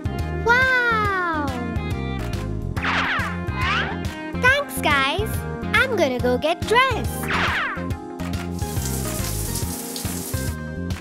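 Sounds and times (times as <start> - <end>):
background music low notes: 0.0 - 11.0
shower water hissing: 8.6 - 10.6.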